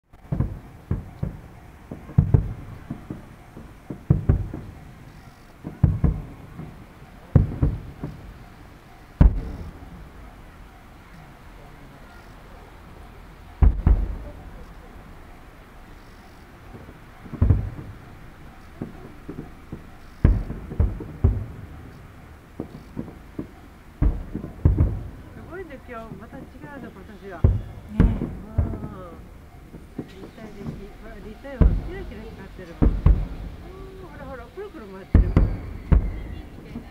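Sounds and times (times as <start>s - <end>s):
firework shells booming: 0.1s - 36.9s.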